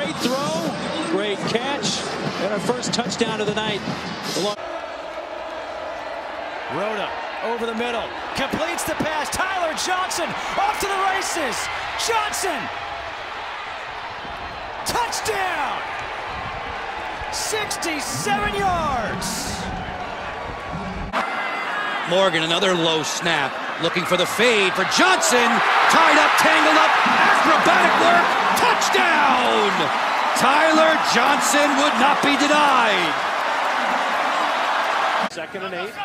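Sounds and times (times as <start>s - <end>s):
stadium crowd noise: 0.0s - 36.0s
man's voice: 17.4s - 19.7s, 22.1s - 33.2s.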